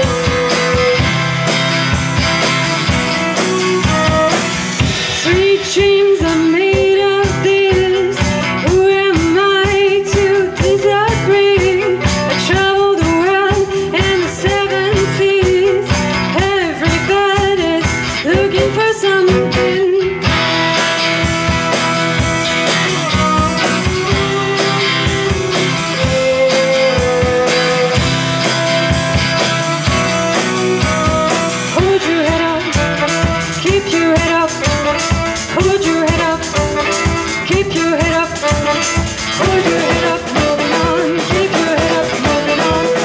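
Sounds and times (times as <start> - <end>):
acoustic guitar: 0.0 - 43.0
violin: 0.0 - 43.0.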